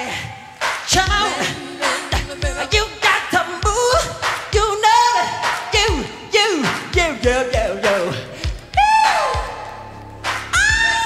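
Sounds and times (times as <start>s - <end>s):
steady thumping beat: 0.6s - 11.0s
man singing: 0.9s - 9.4s.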